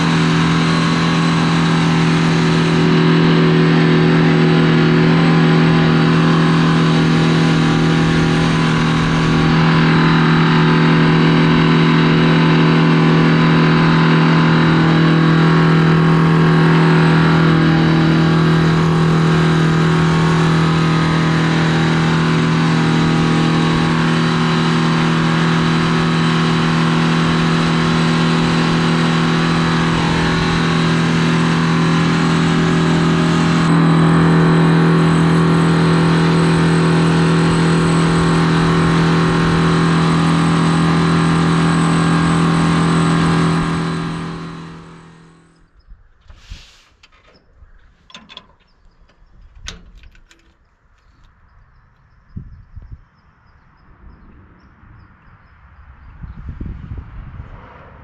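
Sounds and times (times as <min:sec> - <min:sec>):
tractor diesel engine running: 0:00.0 - 0:57.6.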